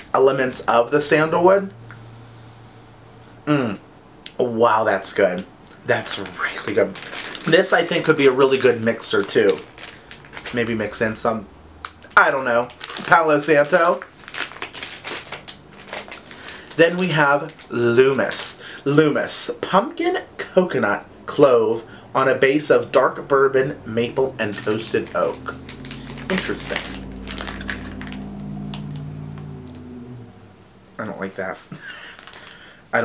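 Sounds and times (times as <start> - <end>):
man humming doubtfully: 3.5 - 3.8
plastic bag crinkling: 5.7 - 11.3, 11.9 - 18.5, 24.0 - 29.4, 31.7 - 32.8.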